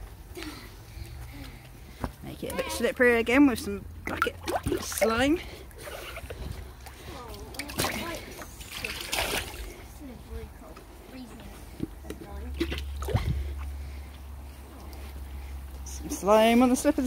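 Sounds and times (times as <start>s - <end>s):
water splashing and sloshing: 3.9s - 10.0s, 12.3s - 14.0s.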